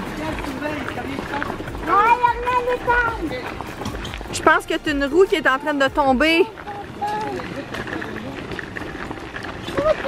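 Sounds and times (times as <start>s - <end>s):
footsteps on gravel: 0.0s - 10.0s
wagon wheels crunching on gravel: 0.0s - 10.0s.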